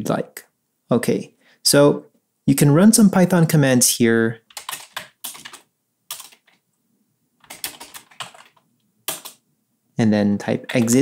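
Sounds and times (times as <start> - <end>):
computer keyboard typing: 4.4 - 6.6, 7.4 - 9.4, 10.6 - 11.0.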